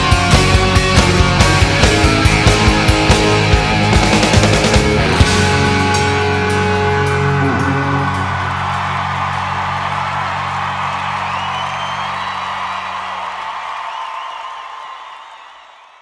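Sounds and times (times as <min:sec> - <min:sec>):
rock band chord ringing: 0:00.0 - 0:11.2
crowd cheering: 0:00.0 - 0:16.0.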